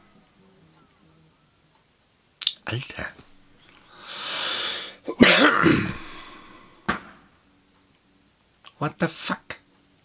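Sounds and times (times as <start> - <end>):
man coughing: 5.1 - 6.5.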